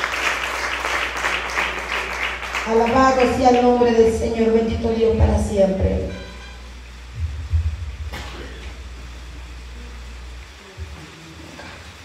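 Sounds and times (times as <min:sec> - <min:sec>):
low steady sound system hum: 0:00.0 - 0:12.0.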